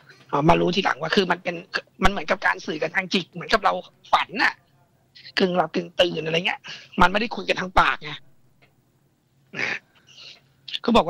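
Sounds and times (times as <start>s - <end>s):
person speaking: 0.0s - 8.4s, 9.6s - 11.0s.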